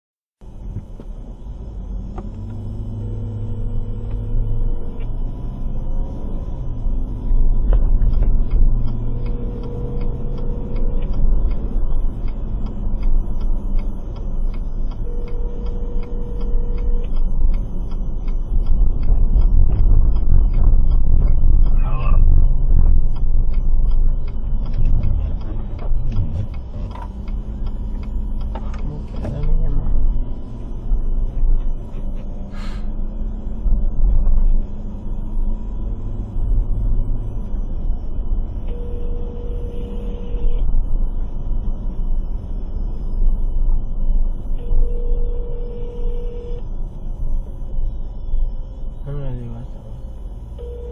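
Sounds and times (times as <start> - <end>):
car cabin rumble: 0.4 - 41.7
turn signal ticking: 2.0 - 40.6
muffled speech: 28.7 - 30.0
phone ringing: 50.6 - 50.9.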